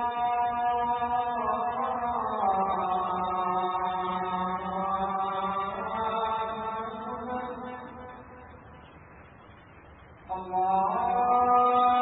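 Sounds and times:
man chanting through a microphone: 0:00.0 - 0:08.3, 0:10.3 - 0:12.0.

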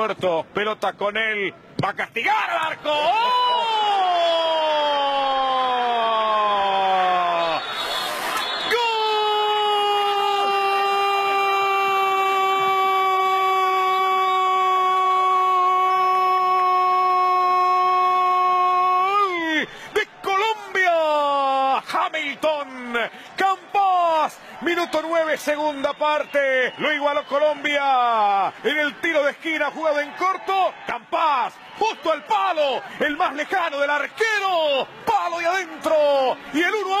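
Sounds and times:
football commentator shouting: 0:01.3 - 0:07.6, 0:08.6 - 0:37.0.

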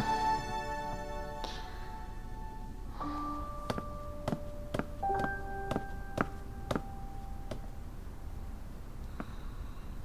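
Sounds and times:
held keyboard notes: 0:02.9 - 0:07.9.

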